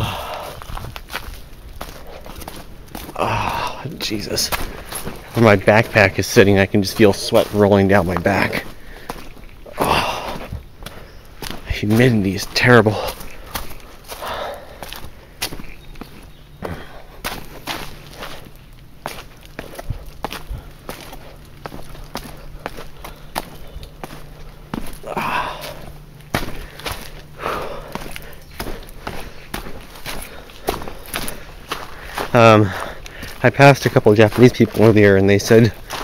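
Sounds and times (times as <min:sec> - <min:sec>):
footsteps on leaf-covered dirt trail: 0:00.0 - 0:36.0.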